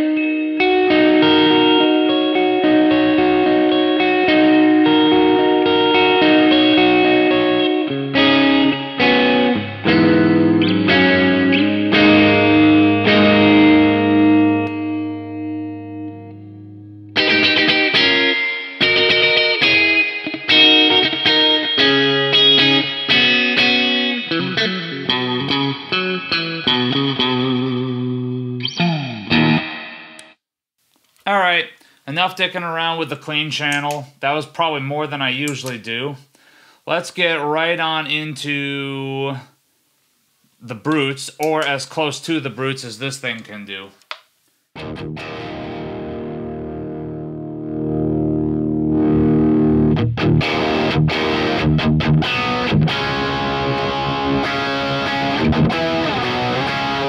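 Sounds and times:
clean electric guitar with reverb: 0:00.0 - 0:30.4, 0:44.8 - 0:57.0.

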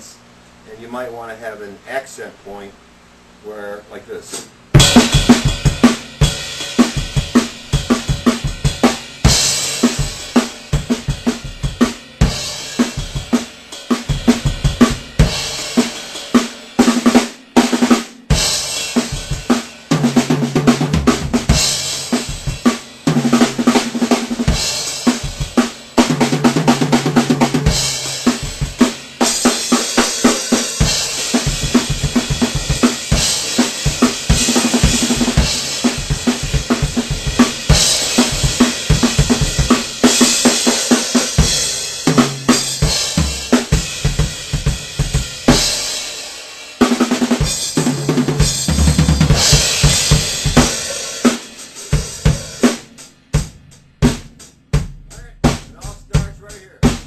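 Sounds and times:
rock drum kit playing: 0:04.3 - 0:57.0.

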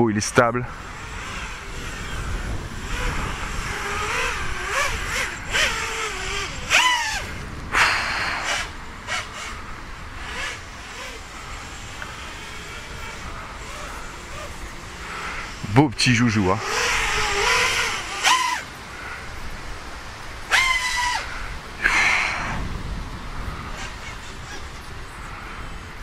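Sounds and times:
quadcopter motors whining: 0:00.0 - 0:26.0.

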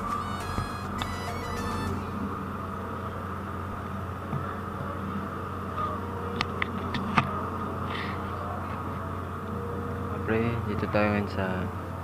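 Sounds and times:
ship engines humming: 0:00.0 - 0:04.2.

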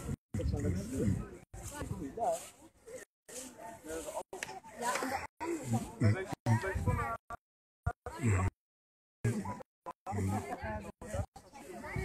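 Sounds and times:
people talking: 0:00.0 - 0:08.6, 0:09.3 - 0:12.0.

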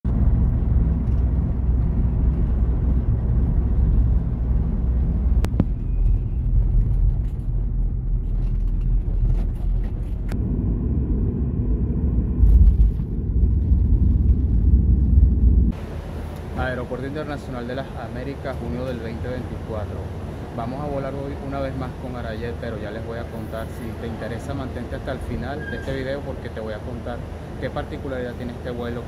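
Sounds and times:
road and engine rumble inside vehicle: 0:00.0 - 0:29.0.

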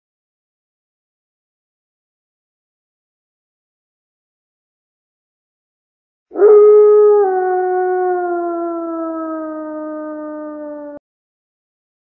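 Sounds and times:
wolf howling: 0:06.3 - 0:11.0.

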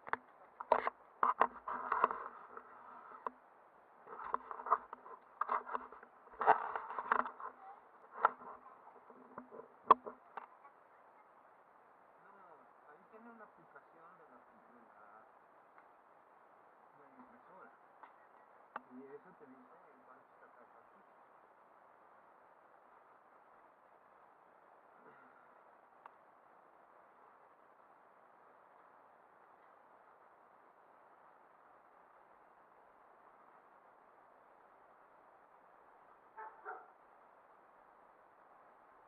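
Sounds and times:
camera handling rustling and knocks: 0:00.1 - 0:03.3, 0:04.1 - 0:07.5.

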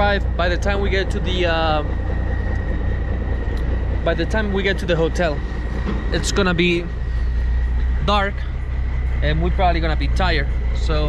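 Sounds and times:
faint high whine: 0:00.0 - 0:11.0
vehicle engines rumbling: 0:00.0 - 0:11.0.

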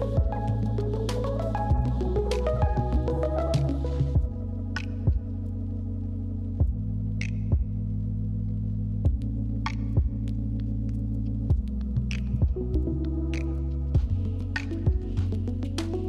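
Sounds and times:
soft low beat thudding: 0:00.0 - 0:05.5, 0:06.6 - 0:08.0, 0:09.0 - 0:16.0.

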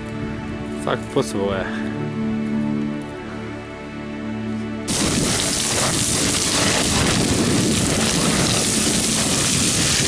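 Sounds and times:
scree crunching underfoot: 0:04.9 - 0:10.0.

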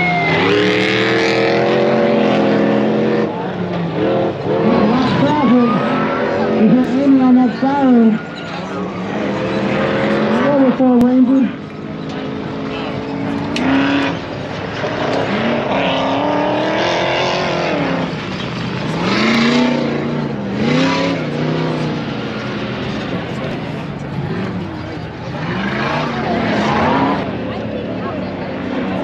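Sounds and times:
race car engines: 0:00.0 - 0:29.0.

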